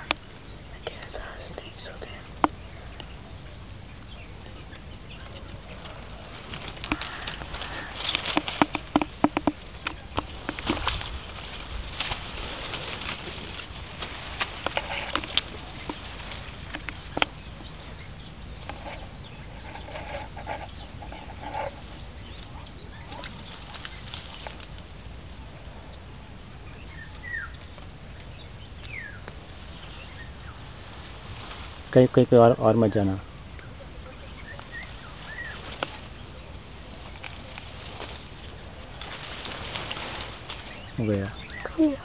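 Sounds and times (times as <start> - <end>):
low rumble: 0.0 - 42.0
person whispering: 0.8 - 2.5.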